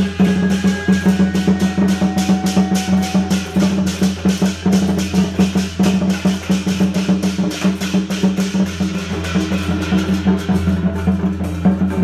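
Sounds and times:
drums beaten in fast rhythm: 0.0 - 12.0.

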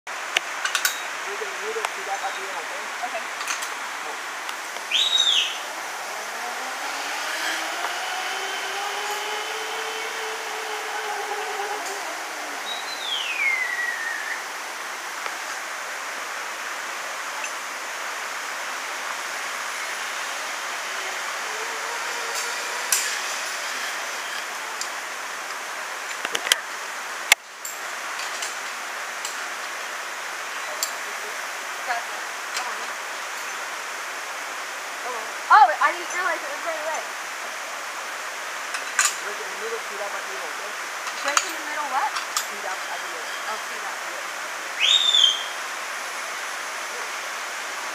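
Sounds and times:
steady hiss: 0.1 - 47.9
sharp whistle: 4.9 - 5.6, 44.8 - 45.6
falling whistle: 4.9 - 5.7, 6.5 - 14.4, 44.8 - 45.6
zip line pulley whining: 5.0 - 14.8, 19.8 - 26.3.

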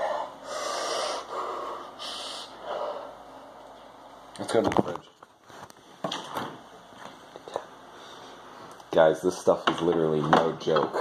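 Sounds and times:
sharp hissing breaths: 0.0 - 3.3.

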